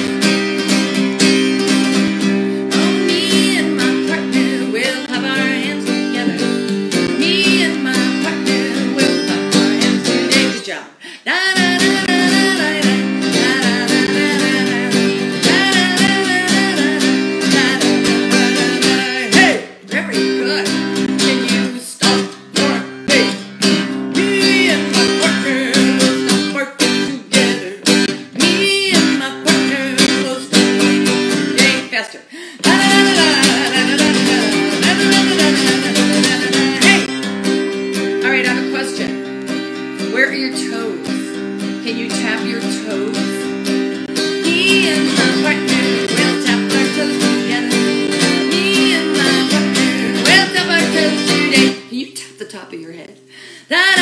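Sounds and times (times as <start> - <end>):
acoustic guitar strumming: 0.0 - 53.0
woman singing a children's song: 1.6 - 54.0.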